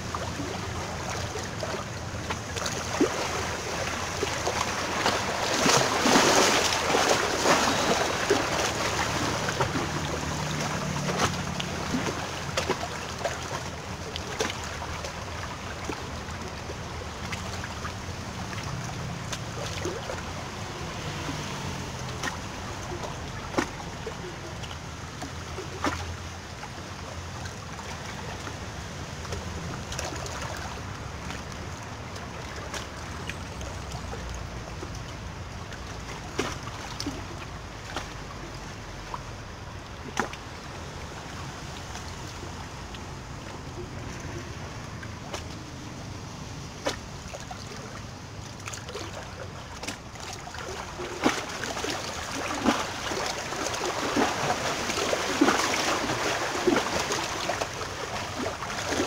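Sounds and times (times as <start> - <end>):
sea water washing on rocks: 0.0 - 59.0.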